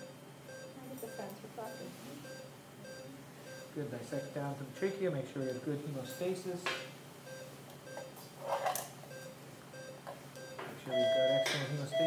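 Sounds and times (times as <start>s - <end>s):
patient monitor beeping: 0.0s - 6.4s, 7.2s - 8.3s, 9.1s - 12.0s.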